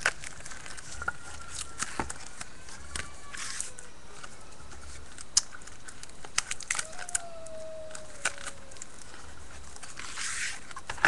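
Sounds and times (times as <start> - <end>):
plastic packaging clicks and crinkles: 0.0 - 11.0.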